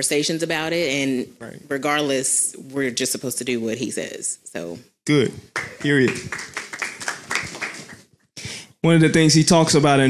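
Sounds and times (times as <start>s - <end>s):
audience clapping: 5.5s - 8.0s.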